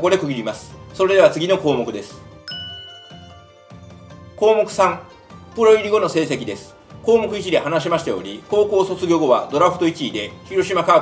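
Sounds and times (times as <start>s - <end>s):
background music: 0.0s - 11.0s
bright chime: 2.5s - 4.0s.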